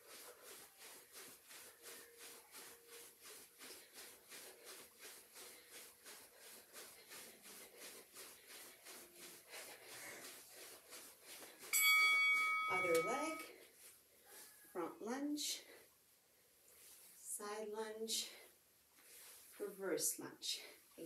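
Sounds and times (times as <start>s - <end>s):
footfalls jogging on carpet: 0.0s - 14.8s.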